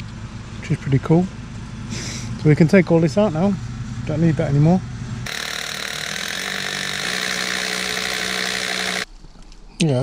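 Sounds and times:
motor-driven machine running: 5.0s - 9.1s.

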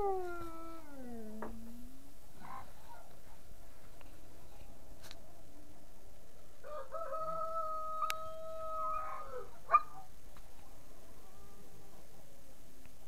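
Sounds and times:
rooster crowing: 6.6s - 9.5s.

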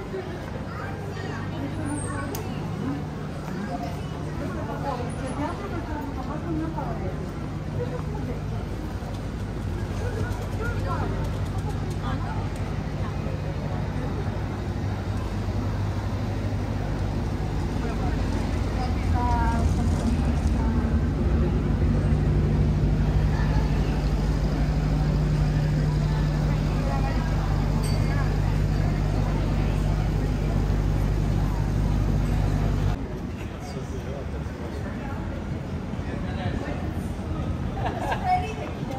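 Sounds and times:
people talking: 0.0s - 38.9s.

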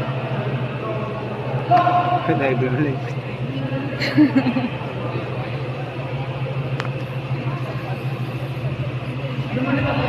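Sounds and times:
murmur of voices: 0.0s - 10.0s
steady low hum: 0.0s - 10.0s.

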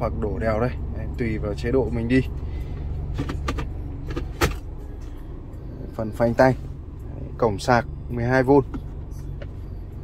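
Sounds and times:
low car cabin hum: 0.0s - 10.0s.

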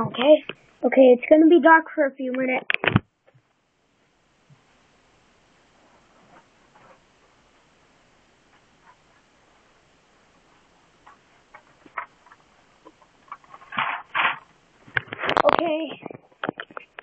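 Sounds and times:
objects clicking and tapping: 11.0s - 17.0s.

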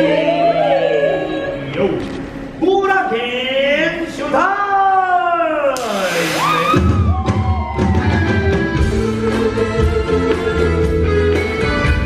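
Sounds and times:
live rock band: 6.0s - 12.0s.

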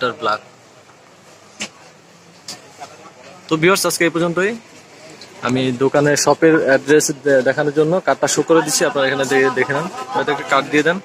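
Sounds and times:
busy shop background noise: 0.0s - 11.0s.

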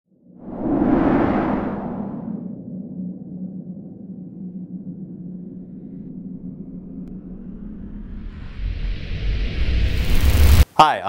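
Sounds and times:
hum: 0.4s - 10.6s
low rumbling drone: 0.5s - 9.6s.

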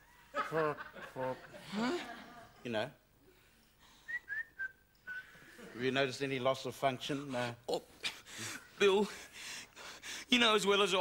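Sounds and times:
person whistling: 4.0s - 5.4s.

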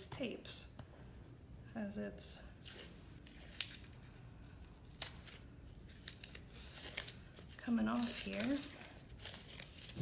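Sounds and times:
tape peeling crackles: 2.6s - 10.0s.

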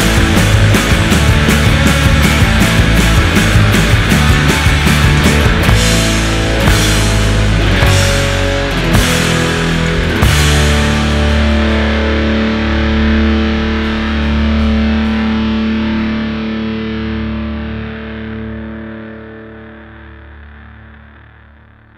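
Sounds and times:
distorted electric guitar chord ringing: 0.0s - 21.9s.

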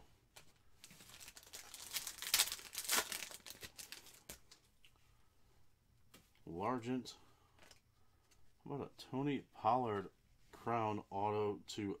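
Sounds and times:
foil wrapper tearing and crinkling: 0.9s - 4.4s.

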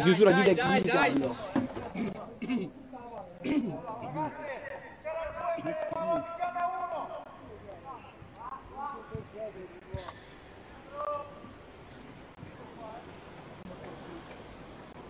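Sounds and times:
footballers shouting: 0.0s - 10.0s, 10.8s - 11.7s.

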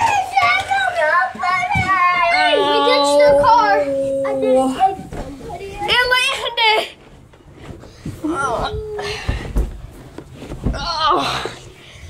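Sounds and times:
children's voices at play: 0.0s - 7.0s
child's high-pitched cry: 2.2s - 5.0s.

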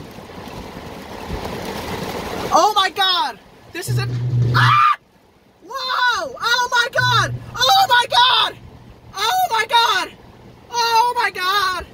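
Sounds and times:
heavy rain on car roof: 5.7s - 11.9s.

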